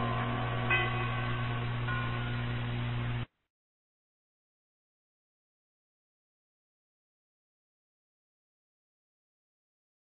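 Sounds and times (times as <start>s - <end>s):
radio hum and hiss: 0.0s - 3.3s.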